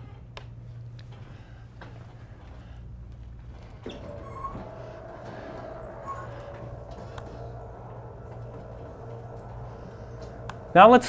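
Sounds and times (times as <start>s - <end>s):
steady low hum: 0.0s - 11.0s
thin steady whine: 0.9s - 11.0s.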